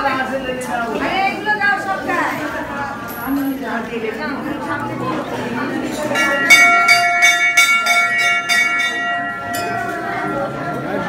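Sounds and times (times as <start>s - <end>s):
temple bell clanging: 5.8s - 11.0s.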